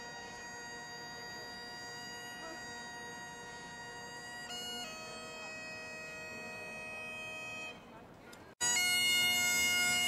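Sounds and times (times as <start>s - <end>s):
bagpipes holding long note: 0.0s - 7.8s, 8.6s - 10.0s.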